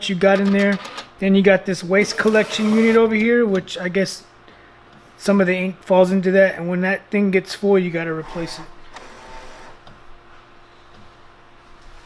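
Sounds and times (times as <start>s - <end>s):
printer mechanical whir: 2.0s - 3.2s, 8.2s - 10.0s.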